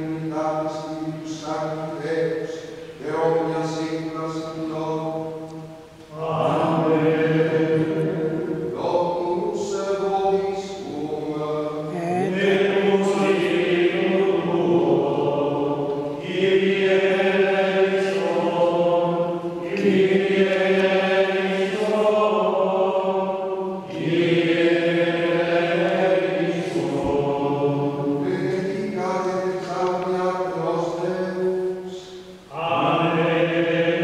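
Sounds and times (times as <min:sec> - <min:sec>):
men singing plainchant: 0:06.1 - 0:34.0.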